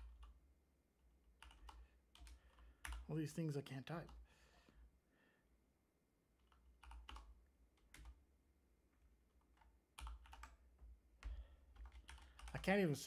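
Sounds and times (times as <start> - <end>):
computer keyboard keystrokes: 1.4 - 3.0, 6.4 - 8.2, 9.4 - 12.6.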